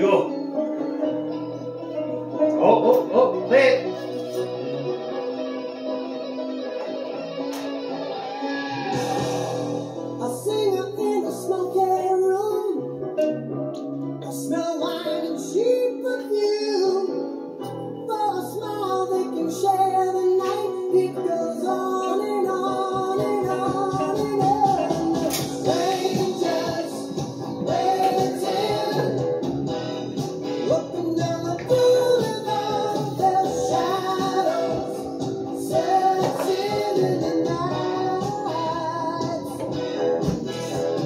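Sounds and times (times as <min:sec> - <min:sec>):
song on a speaker: 0:00.0 - 0:41.0
regular drumbeat: 0:23.2 - 0:29.2.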